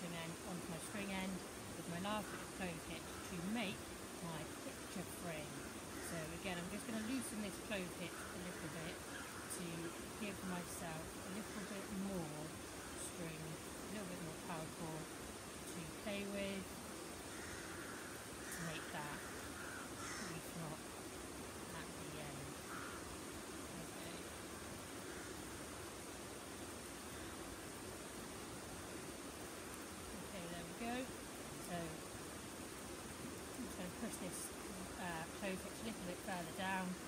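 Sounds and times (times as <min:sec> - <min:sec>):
distant crow caws: 0:05.4 - 0:10.2, 0:17.2 - 0:20.9, 0:22.3 - 0:26.0.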